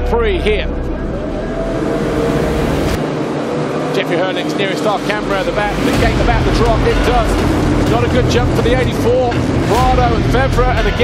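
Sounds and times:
motocross bikes revving: 1.1 - 11.0.

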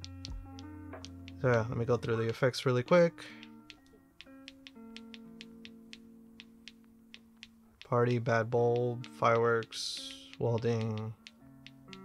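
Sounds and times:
light ticking beat: 0.0 - 12.0.

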